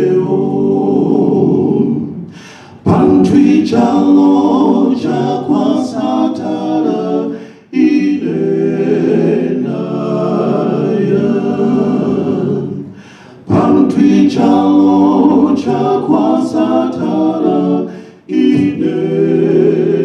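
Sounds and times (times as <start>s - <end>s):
male a cappella quartet singing: 0.0s - 20.0s.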